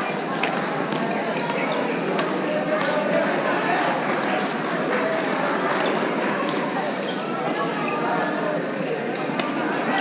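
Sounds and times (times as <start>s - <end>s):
many voices talking: 0.0s - 10.0s.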